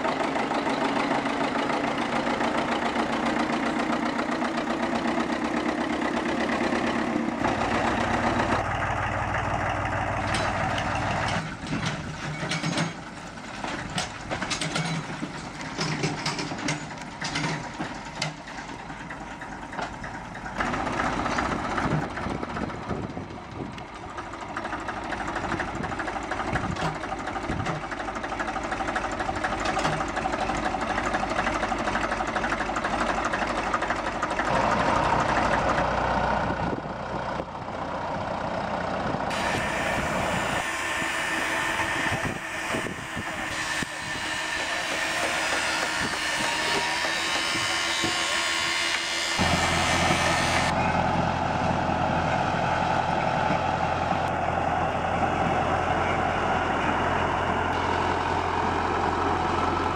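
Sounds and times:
diesel locomotive engine drone: 0.0 - 59.9
locomotive hauling track machine: 0.0 - 59.9.

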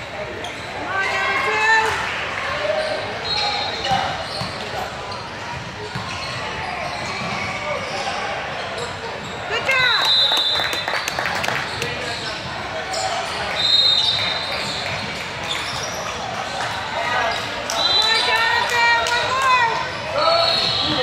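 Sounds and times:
sneakers squeaking: 0.0 - 21.0
basketball bouncing: 5.6 - 6.4
players' voices echoing: 11.3 - 21.0.

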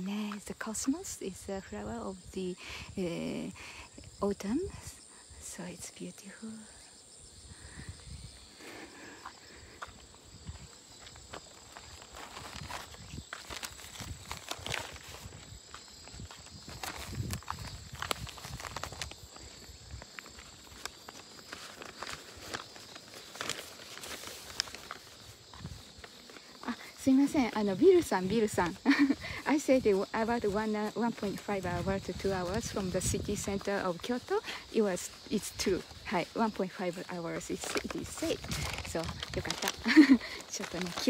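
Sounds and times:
footsteps outdoors: 0.0 - 41.0.

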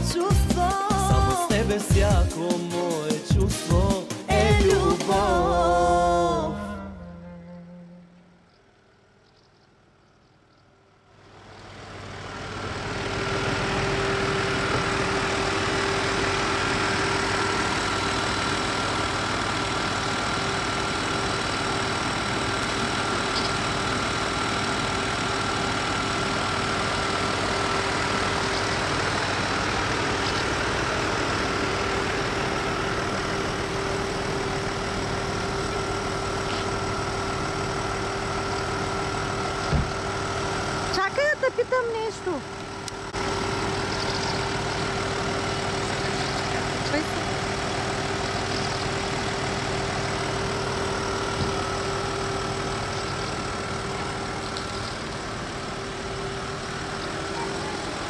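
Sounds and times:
voice: 0.0 - 6.7, 40.9 - 42.5, 46.0 - 47.4, 57.2 - 58.0
car engine idling: 0.0 - 58.0.

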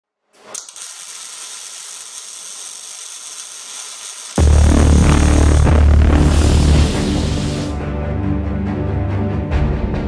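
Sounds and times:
high crackling hiss: 0.4 - 7.7.

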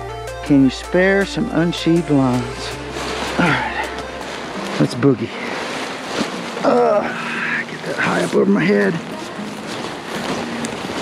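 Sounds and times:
rustling of brush and grass: 0.9 - 11.0
nylon wing brushing along: 1.0 - 11.0.

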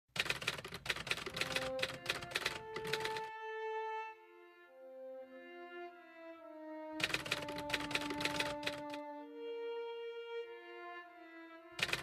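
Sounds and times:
typewriter key clicks: 0.2 - 3.3, 7.0 - 9.0, 11.8 - 12.0.

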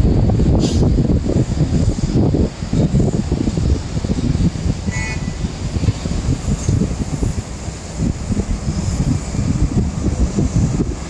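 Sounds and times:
city traffic hum: 0.0 - 11.0
wind buffeting microphone: 0.0 - 11.0
distant vehicle horn toot: 4.9 - 5.4.

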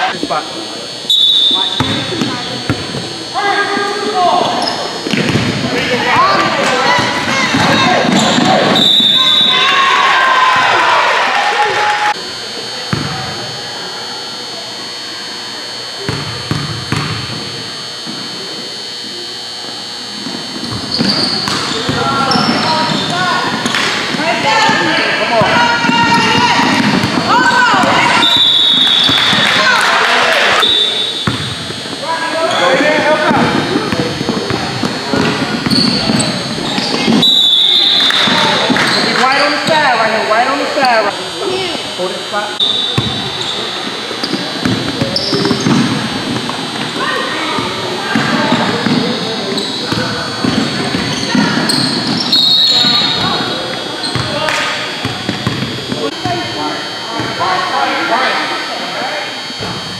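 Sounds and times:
people shouting in echoing hall: 5.9 - 12.2
basketball bouncing on hardwood floor: 55.0 - 55.7.

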